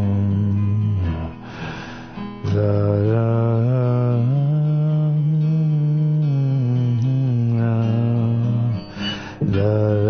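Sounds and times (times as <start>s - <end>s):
man singing a long low note: 0.0s - 1.4s, 2.4s - 10.0s
acoustic rock song: 0.0s - 10.0s.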